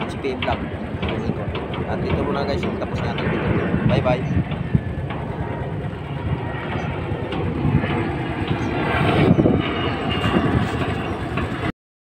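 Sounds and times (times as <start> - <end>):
wind buffeting microphone: 0.0 - 11.7.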